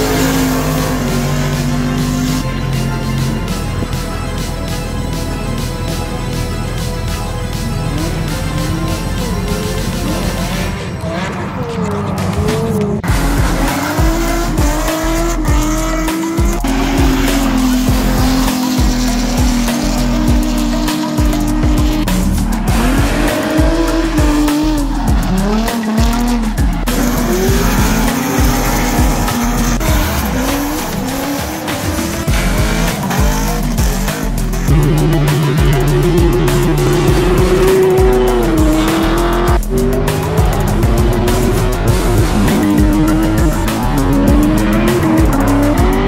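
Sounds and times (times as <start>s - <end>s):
background music with beat: 0.0s - 46.0s
car engines revving: 0.0s - 46.0s.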